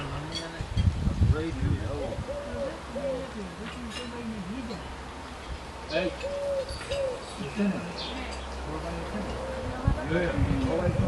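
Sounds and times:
distant indistinct conversation: 0.0s - 11.0s.

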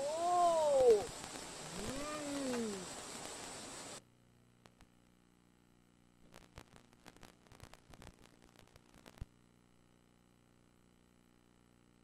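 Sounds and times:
person crying out: 0.0s - 1.1s, 1.7s - 2.9s.

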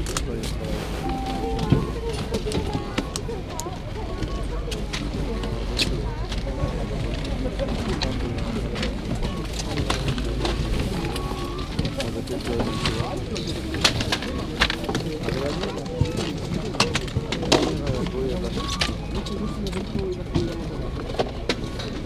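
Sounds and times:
voices: 0.2s - 22.0s.

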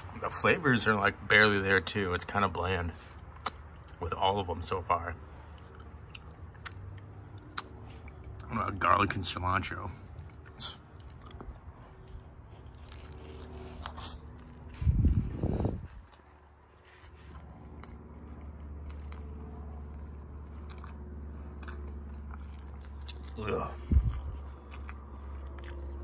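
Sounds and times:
person biting and chewing food: 3.0s - 4.1s, 5.2s - 8.5s, 9.7s - 26.0s.

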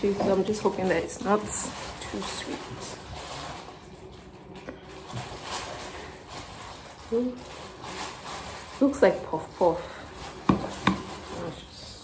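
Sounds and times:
plastic tub lid scraping: 10.3s - 11.6s.

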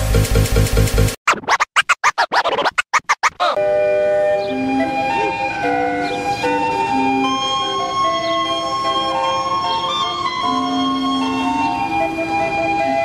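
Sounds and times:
steam calliope playing a tune: 3.6s - 13.0s.

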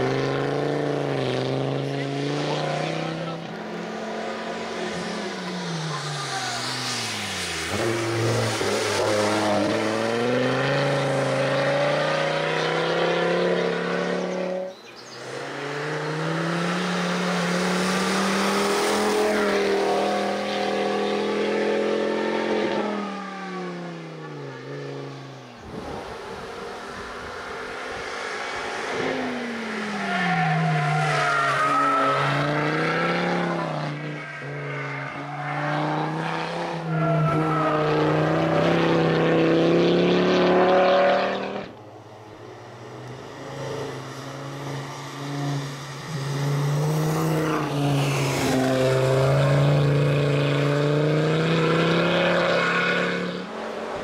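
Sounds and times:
car engine revving hard: 31.9s - 41.8s, 45.2s - 54.0s.

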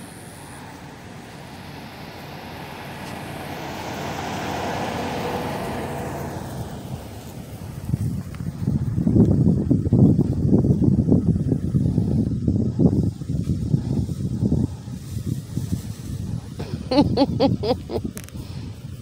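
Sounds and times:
car passing by: 0.0s - 8.9s
wind buffeting microphone: 0.0s - 19.0s.

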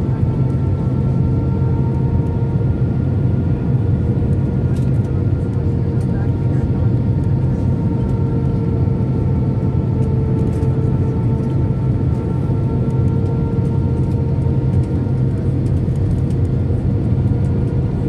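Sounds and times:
aircraft cabin engine rumble: 0.0s - 18.0s.

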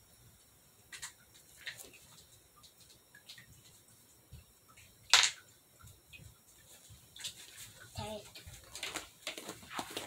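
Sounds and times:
child's faint voice: 8.0s - 8.4s.

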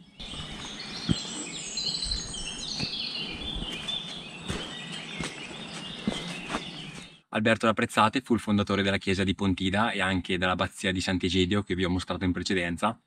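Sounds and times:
songbirds singing: 0.0s - 7.3s
soft thuds: 2.0s - 6.8s.

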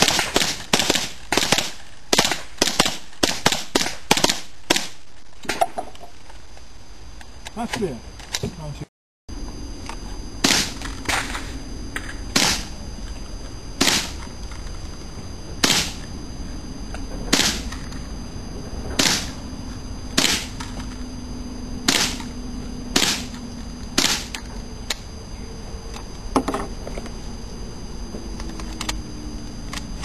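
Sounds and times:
rifle shots: 0.0s - 5.6s, 10.4s - 11.5s, 12.3s - 12.7s, 13.8s - 14.2s, 15.6s - 16.0s, 17.3s - 17.8s, 19.0s - 19.4s, 20.2s - 20.7s, 21.8s - 23.4s, 24.0s - 24.4s.

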